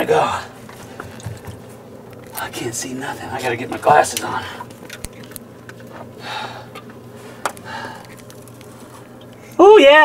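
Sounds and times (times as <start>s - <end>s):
low steady hum: 0.0s - 10.0s
soft breaths: 6.2s - 9.5s.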